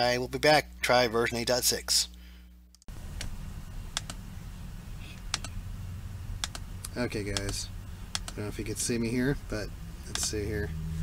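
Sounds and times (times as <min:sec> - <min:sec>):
steady low hum: 0:00.0 - 0:11.0
computer mouse or keyboard clicks: 0:04.0 - 0:04.2, 0:05.3 - 0:05.5, 0:06.4 - 0:06.6, 0:07.3 - 0:08.4, 0:10.1 - 0:10.4.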